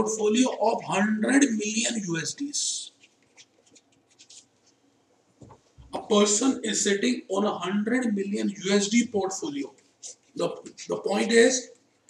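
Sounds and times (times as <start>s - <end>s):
stylus scratching on tablet: 2.6s - 4.8s.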